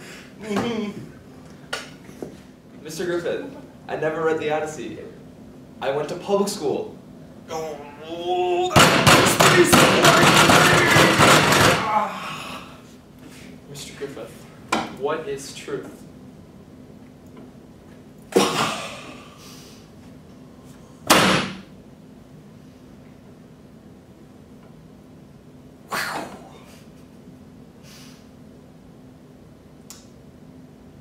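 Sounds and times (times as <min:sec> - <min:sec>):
fists pounding on table: 0:08.7 - 0:11.9
person sneezing: 0:18.3 - 0:19.8, 0:25.9 - 0:26.9.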